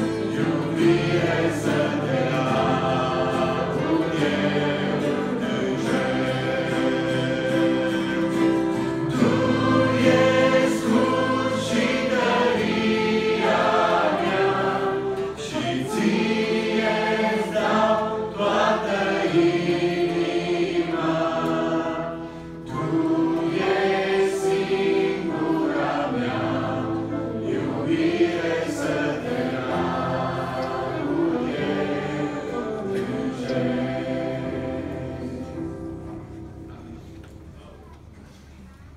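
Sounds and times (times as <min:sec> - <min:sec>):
youth choir singing: 0:00.0 - 0:36.4.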